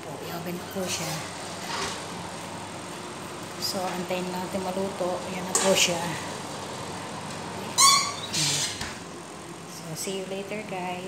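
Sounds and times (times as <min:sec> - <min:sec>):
metallic squeak: 0:07.7 - 0:08.8.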